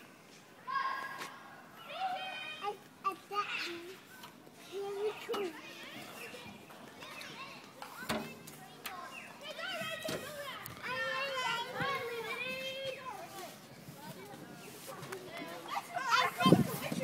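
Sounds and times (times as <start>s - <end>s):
children calling and chattering: 0.6s - 17.0s.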